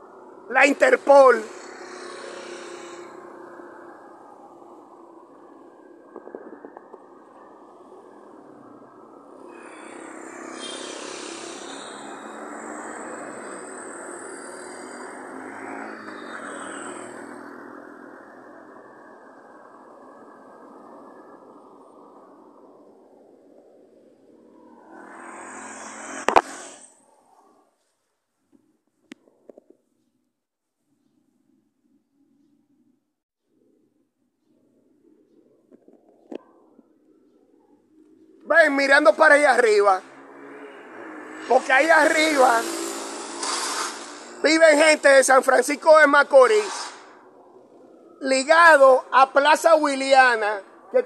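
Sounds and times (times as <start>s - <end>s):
motorcycle passing: 0.0s - 6.1s, 6.8s - 27.6s, 38.0s - 49.4s
vehicle passing slowly: 0.0s - 27.7s, 36.6s - 46.4s.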